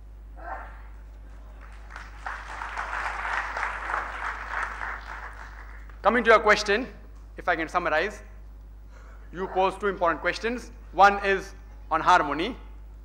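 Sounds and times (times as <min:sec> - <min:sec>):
audience applauding: 0:01.4 - 0:06.0.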